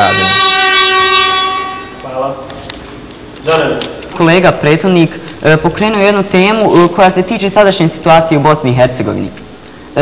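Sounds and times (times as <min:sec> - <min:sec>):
buzzing tone: 0:00.0 - 0:02.1.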